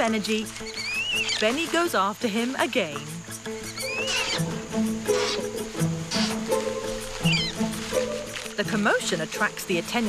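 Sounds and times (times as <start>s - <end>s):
background music: 0.0s - 10.0s
orangutan squealing: 0.6s - 1.4s, 3.6s - 8.4s.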